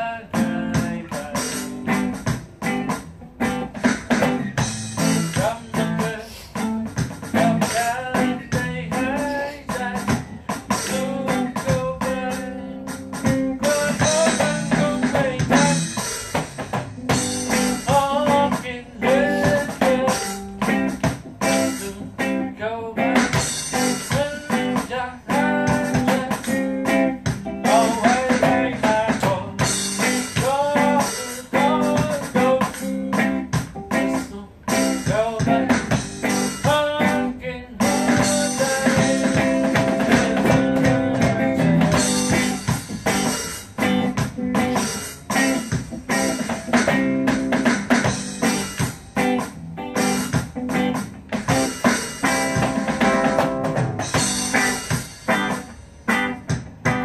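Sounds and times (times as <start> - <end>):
reggae guitars playing: 0.0 - 57.0.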